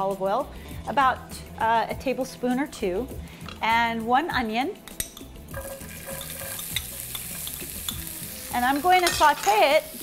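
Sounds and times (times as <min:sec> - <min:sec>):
onion sizzling in hot oil: 0:05.5 - 0:10.0.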